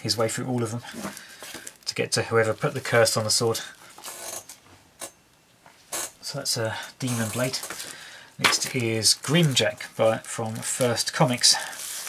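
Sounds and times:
plastic bag crinkling: 0:00.8 - 0:04.6, 0:07.0 - 0:12.0.

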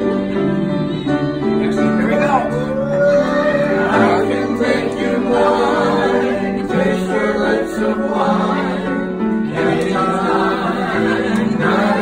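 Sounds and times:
man and woman singing in harmony: 0:00.0 - 0:02.0, 0:03.0 - 0:12.0.

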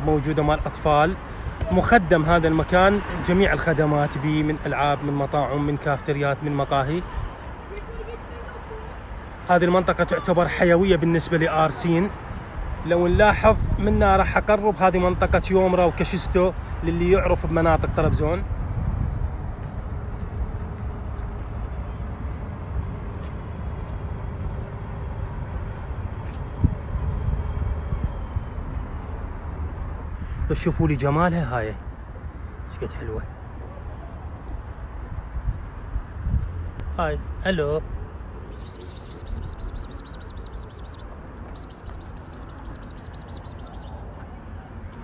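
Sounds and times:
rapid high-pitched chirping: 0:38.5 - 0:44.1.

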